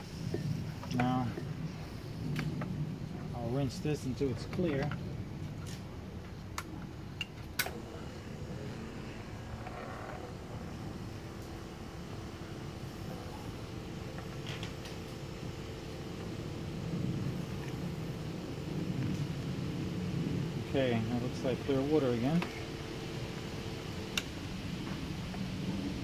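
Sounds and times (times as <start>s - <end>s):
foam generator humming: 0.0s - 26.0s.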